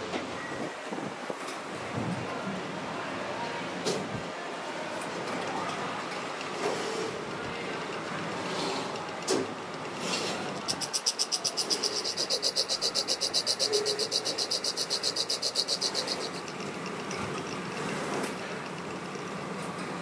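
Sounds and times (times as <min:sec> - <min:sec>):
workshop machines running: 0:04.6 - 0:20.0.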